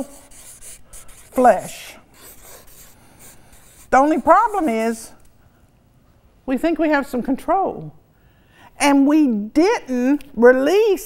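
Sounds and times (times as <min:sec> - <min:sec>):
marker pen writing on paper: 0:00.0 - 0:05.1.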